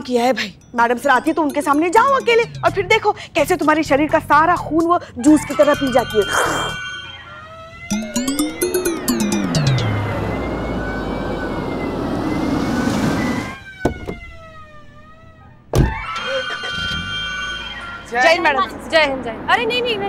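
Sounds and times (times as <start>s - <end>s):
background music: 0.0s - 7.3s, 7.9s - 11.3s
rising and falling pitch glide: 5.4s - 15.3s
jeep driving up: 7.5s - 15.2s.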